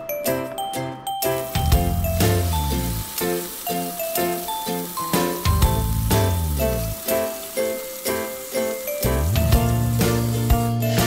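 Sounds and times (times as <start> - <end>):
background music: 0.0 - 11.0
fish sizzling in hot oil: 1.3 - 11.0.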